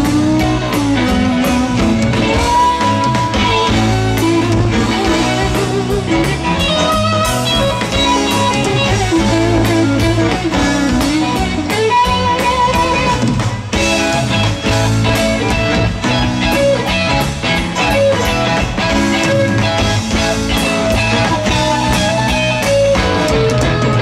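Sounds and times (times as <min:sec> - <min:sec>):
bass guitar: 0:00.0 - 0:24.0
drum kit: 0:00.0 - 0:24.0
electric guitar bending notes: 0:00.0 - 0:24.0.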